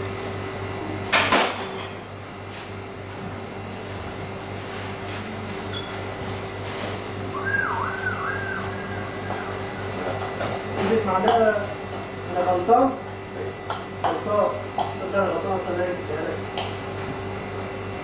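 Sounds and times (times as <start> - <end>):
steady low hum: 2.0 - 14.9
wavering whistle: 7.3 - 10.6
indistinct voices: 7.4 - 11.3.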